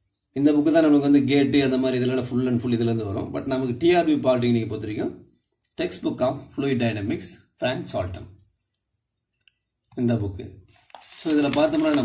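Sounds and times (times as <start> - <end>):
person speaking: 9.9 - 12.0.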